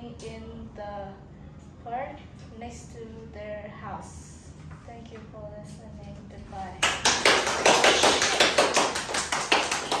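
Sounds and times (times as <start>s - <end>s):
hands clapping: 6.8s - 10.0s.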